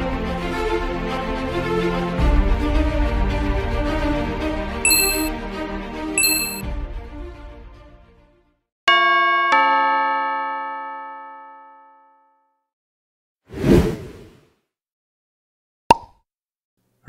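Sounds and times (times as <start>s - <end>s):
two-note electronic chime: 4.9s - 5.3s, 6.2s - 6.6s.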